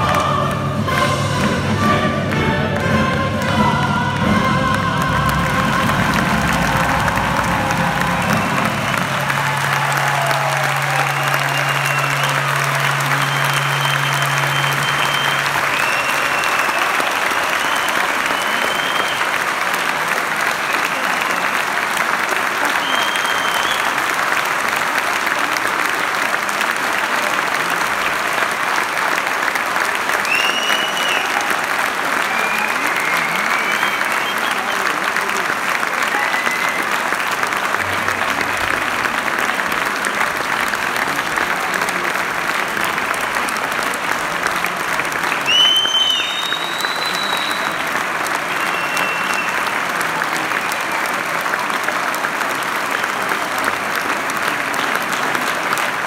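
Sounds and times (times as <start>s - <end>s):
audience applauding: 0.0s - 56.0s
crowd cheers: 4.6s - 56.0s.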